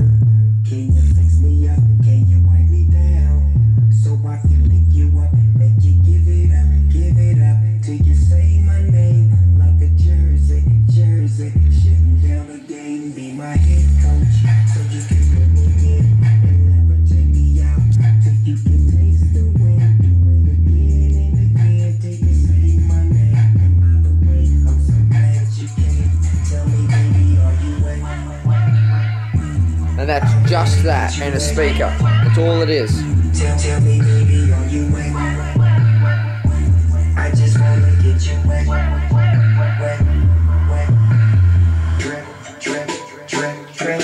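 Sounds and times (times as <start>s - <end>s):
deep bass notes: 0.0s - 12.5s, 13.6s - 42.0s
hip hop through subwoofers: 0.0s - 44.0s.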